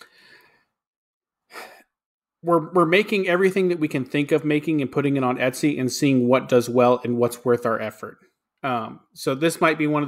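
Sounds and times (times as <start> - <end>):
quick in-breath: 0.0 - 0.8
man sighing exhale: 1.5 - 1.9.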